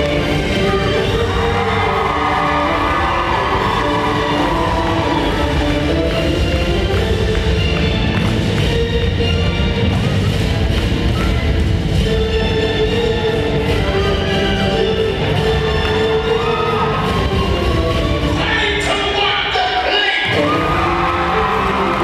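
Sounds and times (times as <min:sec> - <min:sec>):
dance music over sound system: 0:18.3 - 0:22.0.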